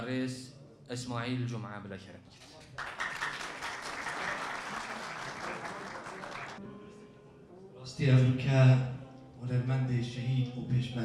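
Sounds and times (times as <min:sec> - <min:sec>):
audience applauding: 0:02.8 - 0:06.6.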